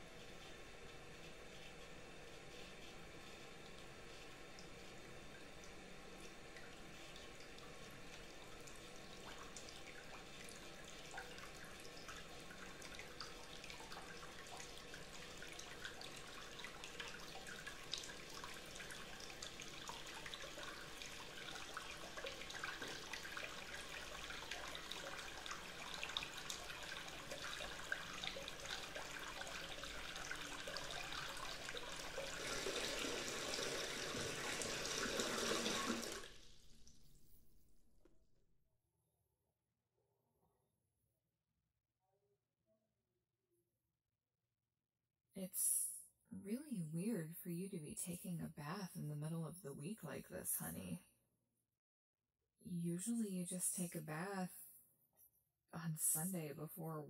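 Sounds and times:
tap water filling bathtub: 3.6s - 37.0s.

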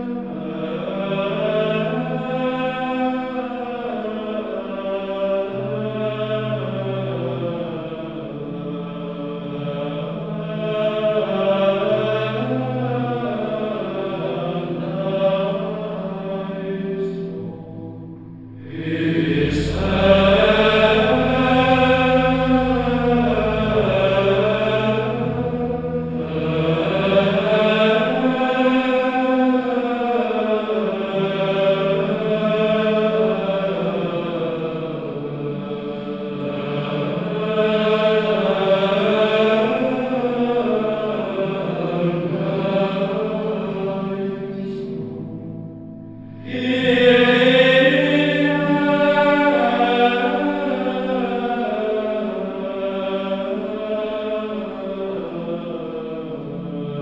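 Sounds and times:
sung religious chant: 0.0s - 57.0s
low held bass note: 18.1s - 27.7s.

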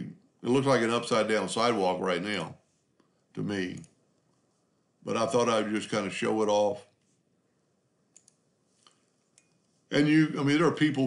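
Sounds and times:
computer mouse clicks: 8.1s - 9.7s.

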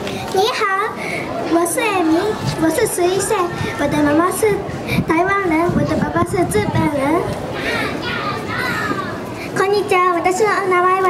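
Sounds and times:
child speaking into microphone: 0.0s - 11.0s.

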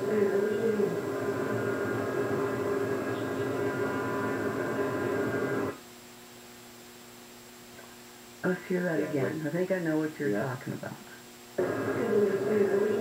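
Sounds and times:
faint electrical hum: 0.0s - 13.0s
mains hum: 0.0s - 13.0s
recording hiss: 0.0s - 13.0s.

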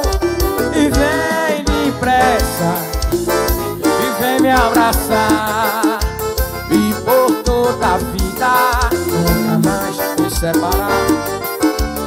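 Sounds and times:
electronic keyboard melody: 0.0s - 12.0s
low drum beat: 8.2s - 10.9s
person singing held note: 9.0s - 10.1s.

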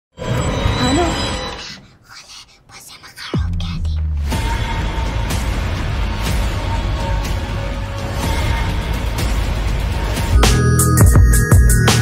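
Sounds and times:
whispered voice: 1.6s - 4.0s.

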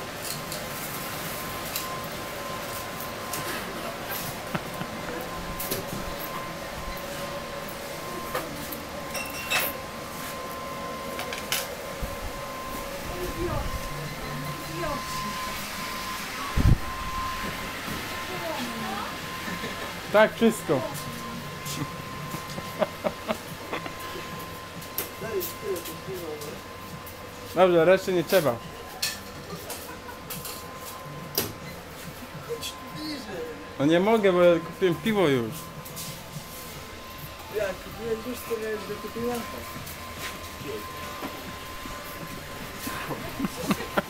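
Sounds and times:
high-pitched hum: 0.0s - 44.0s.

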